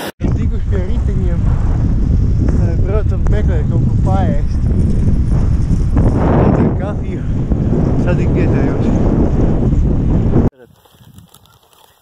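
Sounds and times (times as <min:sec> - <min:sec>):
wind rumbling on microphone: 0:00.2 - 0:12.0.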